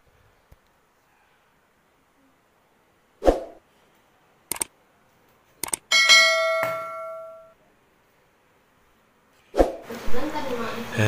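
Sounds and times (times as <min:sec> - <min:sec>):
mouse clicks: 0:04.5 - 0:04.7, 0:05.6 - 0:05.8
notification bell ding: 0:05.9 - 0:07.5.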